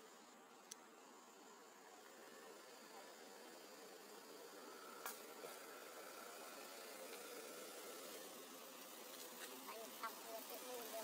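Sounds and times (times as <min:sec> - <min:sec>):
insect buzzing: 0:00.0 - 0:11.0
low background hiss: 0:00.0 - 0:11.0.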